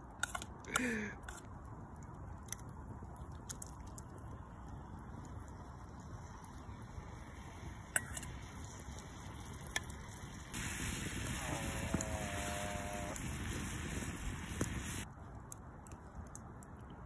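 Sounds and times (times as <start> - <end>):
campfire crackles: 0.0 - 17.0
sauce sizzling in a frying pan: 6.8 - 15.1.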